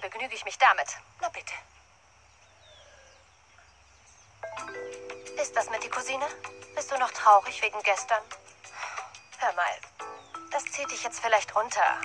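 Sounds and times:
faint bird chirps: 1.2 - 12.0.

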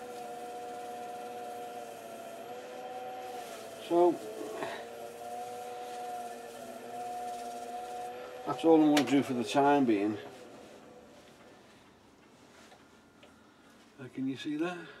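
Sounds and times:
cloth rubbing spinning bowl: 0.0 - 11.3
wood lathe motor whine: 0.0 - 11.5.

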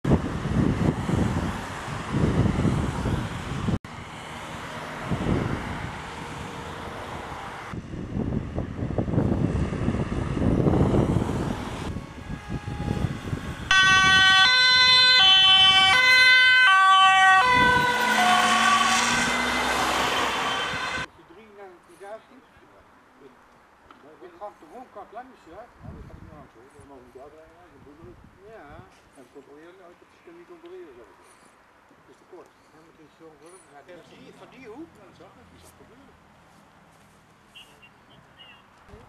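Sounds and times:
two-tone emergency siren: 11.8 - 21.1.

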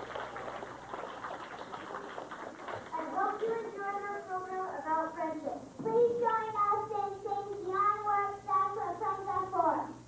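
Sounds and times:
child singing: 3.0 - 10.0.

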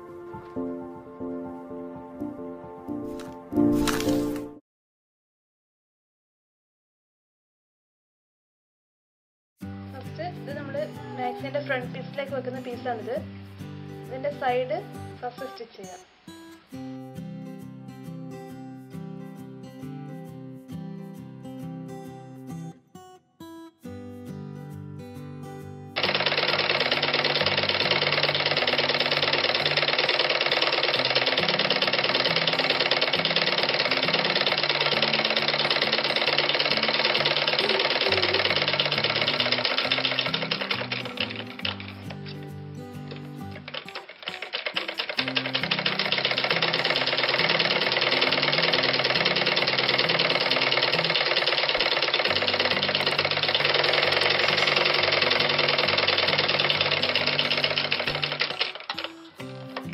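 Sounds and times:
sewing machine stitching: 26.0 - 42.4, 43.0 - 59.9.

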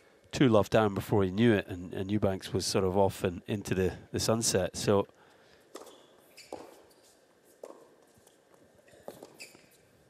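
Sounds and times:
tennis ball hit and bouncing: 5.7 - 9.8.

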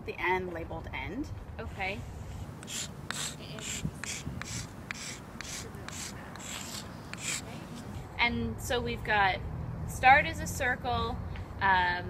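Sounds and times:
chalk scraping on asphalt: 1.6 - 8.1.

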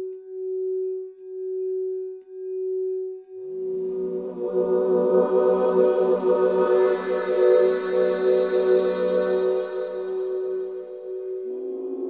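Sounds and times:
crystal singing bowl tone: 0.0 - 12.0
chord of bowl tones: 3.0 - 12.0.

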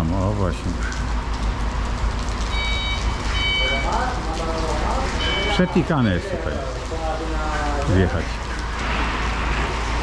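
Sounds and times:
rain falling on vehicles: 0.0 - 10.0
truck back-up alarm beeping: 2.5 - 4.0, 5.1 - 6.1.

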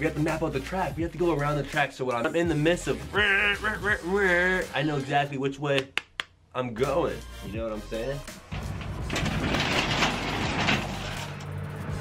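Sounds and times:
garage door rollers rumbling: 8.4 - 12.0.

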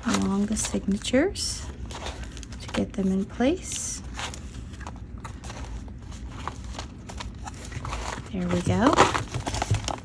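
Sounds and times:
paper pages flipping: 0.0 - 10.0.

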